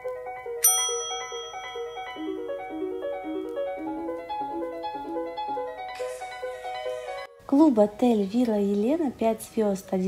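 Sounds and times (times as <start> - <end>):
bright bell ding: 0.6 - 3.8
background music with quick piano notes: 1.8 - 8.4.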